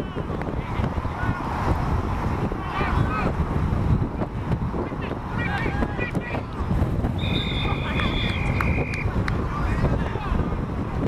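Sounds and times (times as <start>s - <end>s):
wind buffeting microphone: 0.0s - 11.0s
distant players shouting: 4.7s - 10.3s
referee whistle blast: 7.2s - 9.1s.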